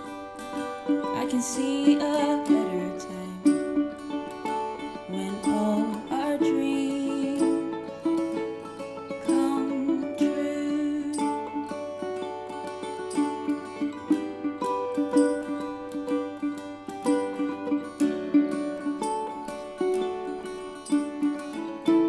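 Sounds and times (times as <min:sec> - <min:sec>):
acoustic guitar played with pick: 0:00.0 - 0:22.0
ukulele: 0:00.0 - 0:22.0.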